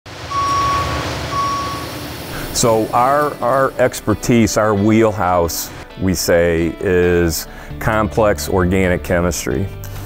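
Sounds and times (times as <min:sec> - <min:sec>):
machinery rumble and hiss: 0:00.1 - 0:04.6
forklift backup alarm beeps: 0:00.2 - 0:02.0.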